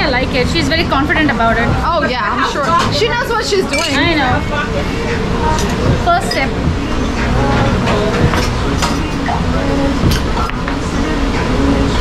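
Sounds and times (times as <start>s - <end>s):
steady low rumble: 0.0s - 3.0s, 4.0s - 12.0s
background voices: 0.0s - 12.0s.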